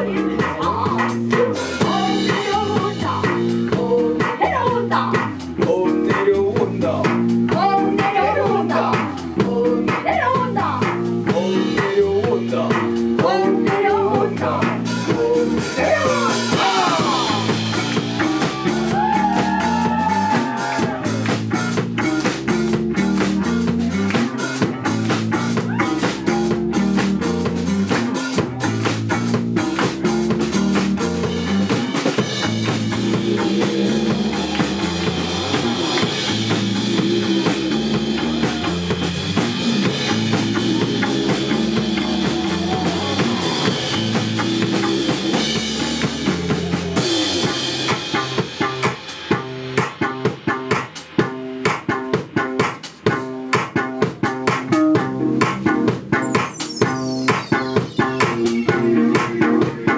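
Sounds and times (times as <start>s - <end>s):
drum kit: 0.0s - 59.9s
electric bass guitar: 0.0s - 59.9s
keyboard: 54.8s - 59.9s.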